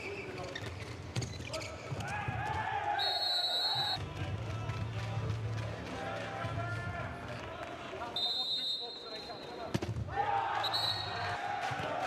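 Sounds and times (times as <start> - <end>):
referee whistle: 3.0 - 4.0, 8.1 - 9.7, 10.6 - 11.3
arena voices: 10.1 - 12.0.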